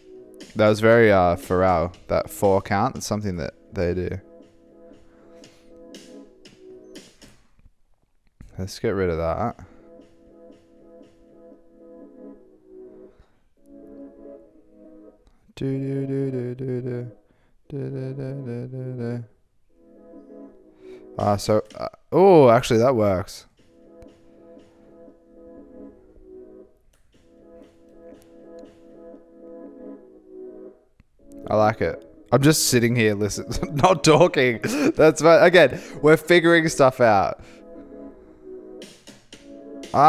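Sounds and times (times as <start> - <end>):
electronic music chords: 0.0 - 7.5, 9.0 - 17.1, 19.8 - 40.0.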